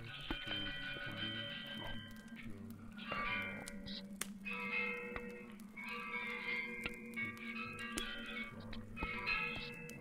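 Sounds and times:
ambient drone music: 0.0s - 10.0s.

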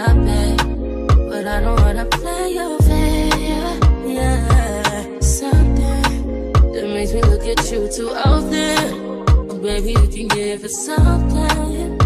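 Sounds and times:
hip-hop track with heavy bass: 0.0s - 12.0s.

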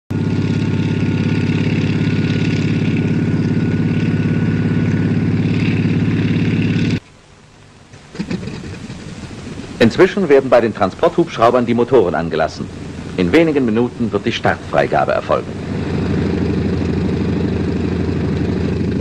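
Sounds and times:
large engine pulsing: 0.1s - 7.0s, 7.9s - 19.0s
person speaking: 9.8s - 15.6s.

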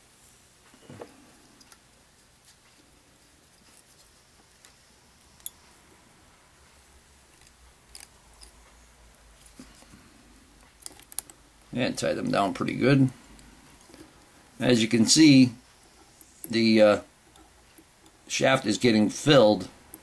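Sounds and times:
soft rustles: 0.2s - 4.8s.

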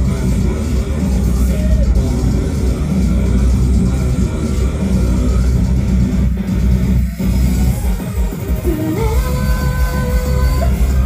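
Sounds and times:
loud rock music: 0.0s - 11.0s.

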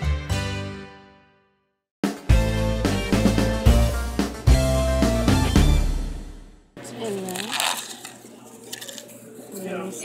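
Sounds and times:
person's voice: 6.8s - 7.9s
plastic bag rustling: 7.0s - 9.7s.

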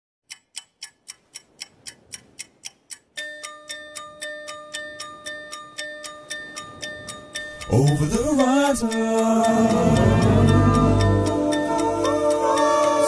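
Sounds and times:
clock ticking: 0.2s - 13.0s
sustained chime-like chord: 9.5s - 12.0s.

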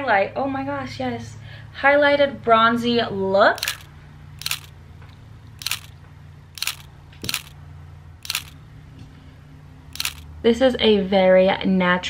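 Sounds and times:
camera shutter clicks: 3.6s - 4.7s, 5.6s - 5.9s, 6.6s - 7.6s, 8.2s - 8.6s, 10.0s - 10.2s.

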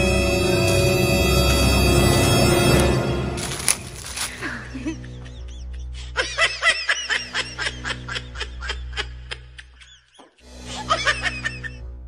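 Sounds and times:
music with low drone: 0.0s - 12.0s.

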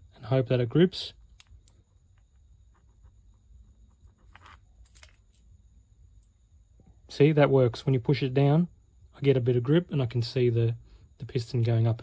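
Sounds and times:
small engine parts clicking and scraping: 4.0s - 5.4s.

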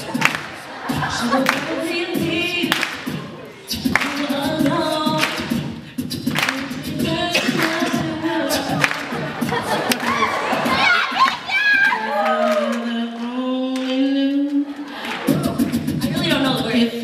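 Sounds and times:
beatboxed vocal percussion: 0.0s - 17.0s
person singing: 0.9s - 11.2s, 11.8s - 17.0s.

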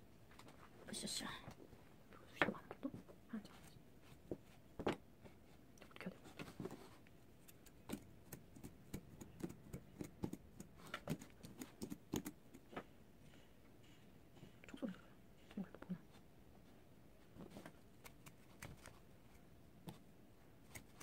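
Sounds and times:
comb clicking: 7.4s - 12.7s, 18.0s - 19.0s.

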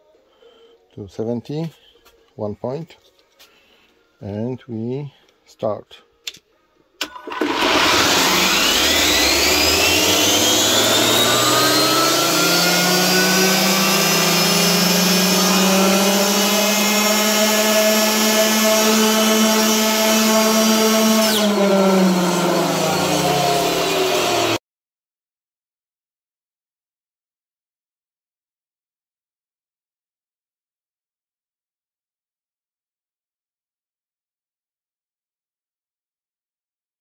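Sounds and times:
electric motor whine: 7.1s - 24.6s.

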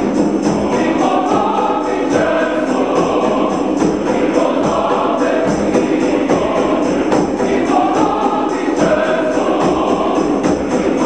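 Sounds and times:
hand drums: 0.0s - 11.0s
men's choir singing: 0.0s - 11.0s
rattling percussion: 0.0s - 11.0s.

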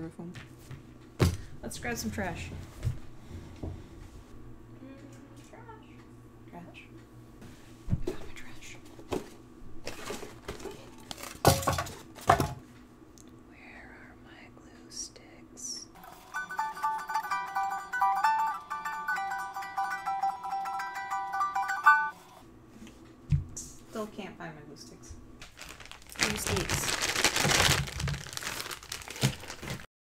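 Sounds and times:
ukulele strummed chords: 16.1s - 22.1s.

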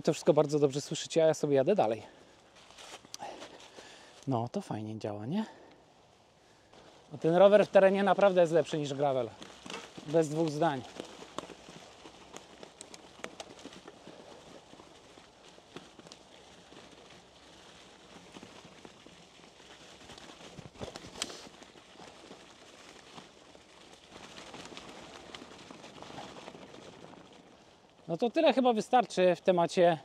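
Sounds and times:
bike tyres crunching dry leaves: 0.0s - 4.4s, 5.3s - 30.0s
bike clicks and clatter: 6.7s - 29.2s.

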